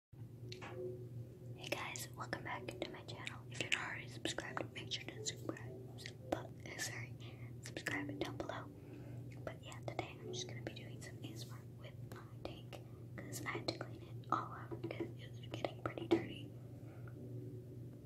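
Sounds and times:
steady low hum: 0.2s - 18.0s
close whispering: 1.6s - 8.7s, 9.3s - 16.5s.

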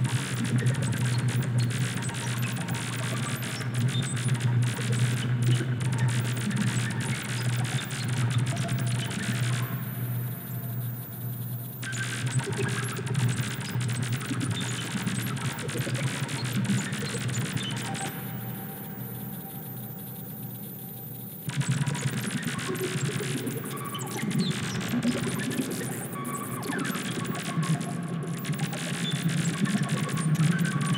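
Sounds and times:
clicking crackling noise texture: 0.0s - 30.9s.

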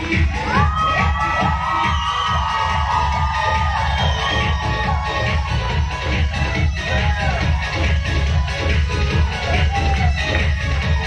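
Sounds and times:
dance music with bass beat: 0.0s - 11.0s
crowd cheering: 0.1s - 11.0s.

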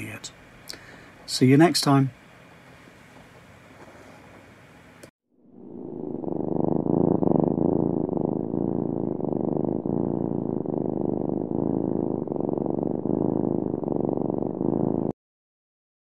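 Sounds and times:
cat purring: 3.7s - 4.4s, 5.4s - 15.2s.

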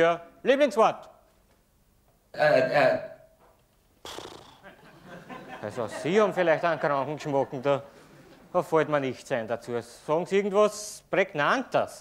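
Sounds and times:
man making creaky hesitation sound: 4.0s - 4.8s.

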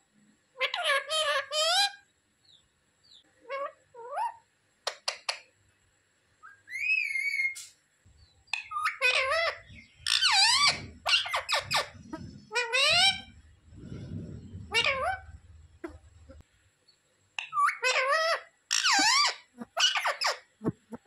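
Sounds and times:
parakeet squawky calls: 0.6s - 2.0s, 8.5s - 13.4s, 14.6s - 16.4s, 17.4s - 21.0s
parakeet rising whistle: 6.4s - 7.6s.

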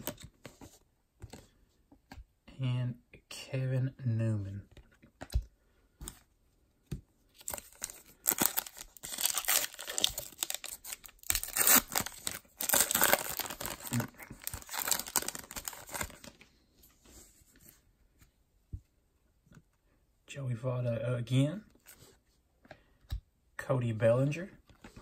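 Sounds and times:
foil wrapper crinkling and tearing: 7.4s - 16.3s.

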